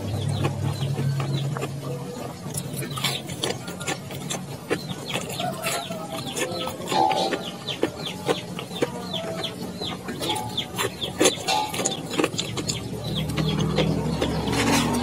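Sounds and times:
chewing with mouth clicks: 0.0 - 15.0
chickens clucking: 0.0 - 15.0.

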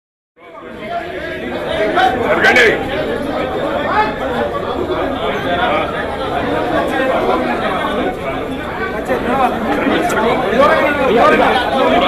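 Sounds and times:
crowd chatter: 0.4 - 12.0.

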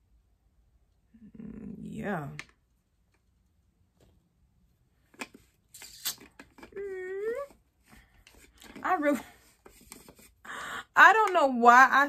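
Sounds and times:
person speaking: 1.2 - 2.5.

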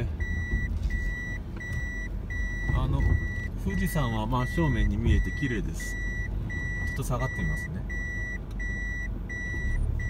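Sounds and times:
car low rumble: 0.0 - 10.0
reverse warning chime beeping: 0.0 - 10.0.

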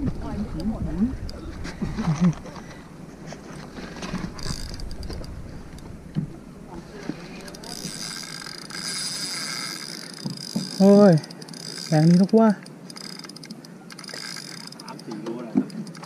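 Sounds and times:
fishing reel whirring: 3.5 - 6.1, 6.7 - 16.0.

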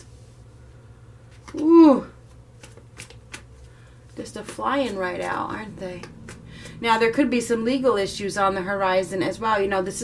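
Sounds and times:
cards being shuffled: 1.3 - 6.8
card snaps: 2.6 - 3.6.

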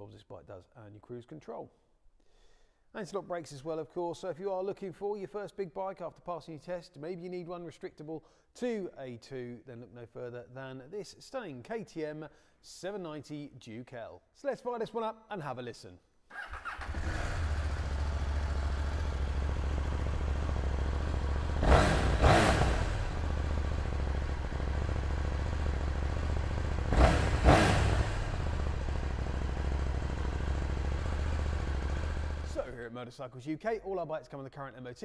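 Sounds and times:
engine throttle blips: 16.6 - 32.6
motorcycle engine idling: 16.6 - 32.7.

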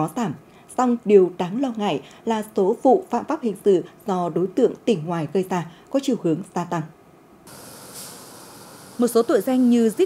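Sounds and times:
street traffic hiss: 7.5 - 10.0.

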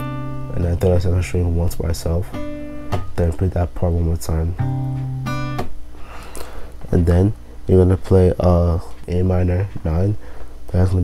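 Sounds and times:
acoustic guitar fingerpicking: 0.0 - 0.6, 2.2 - 3.5, 4.6 - 5.8.

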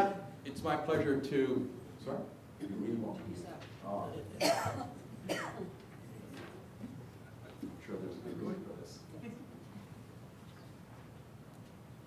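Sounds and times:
person coughing: 4.4 - 5.8.

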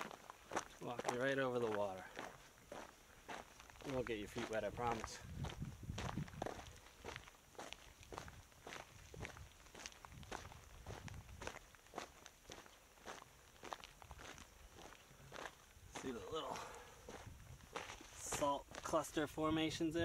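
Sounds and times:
footsteps crunching on salt crust: 0.0 - 19.9.

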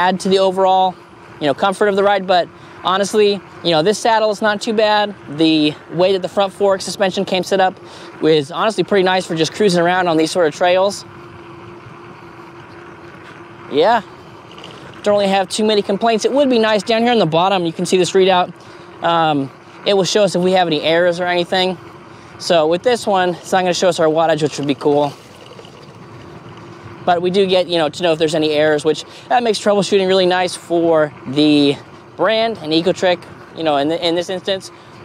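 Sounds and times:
faint constant tone: 0.0 - 35.0.

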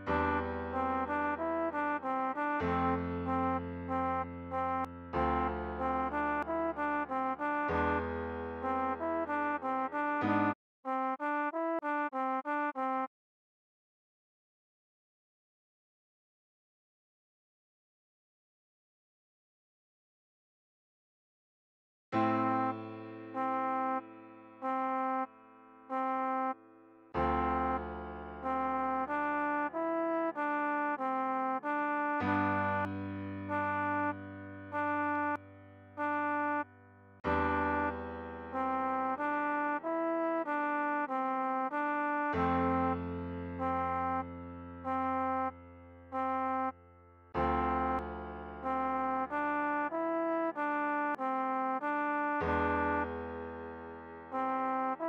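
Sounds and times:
slow trombone melody: 0.0 - 13.1, 22.2 - 46.8, 47.4 - 53.2, 54.3 - 55.0.

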